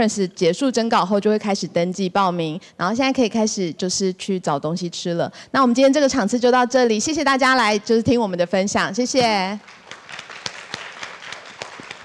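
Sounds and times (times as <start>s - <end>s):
scattered audience clapping: 9.4s - 12.0s.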